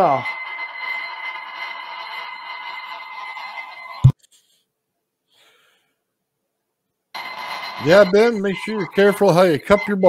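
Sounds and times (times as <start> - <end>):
high ringing tone: 0.0 - 4.2, 7.2 - 10.0.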